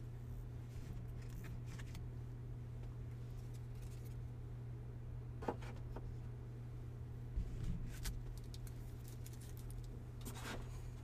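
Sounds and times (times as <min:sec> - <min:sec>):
steady low hum: 0:00.0 - 0:11.0
cards rustling against cards: 0:07.9 - 0:10.6.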